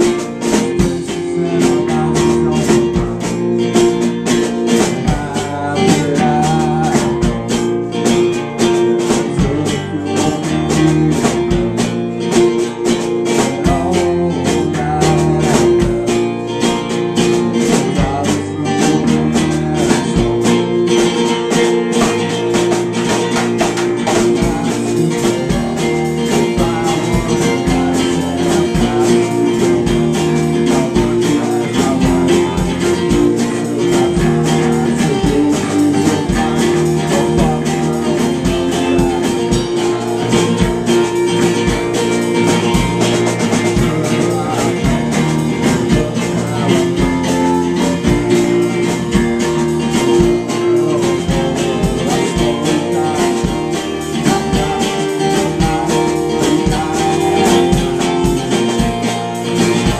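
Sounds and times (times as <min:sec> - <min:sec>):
drum kit steady beat: 0:00.0 - 0:59.9
electric guitar: 0:00.0 - 0:59.9
strummed acoustic-electric guitar: 0:00.0 - 0:59.9.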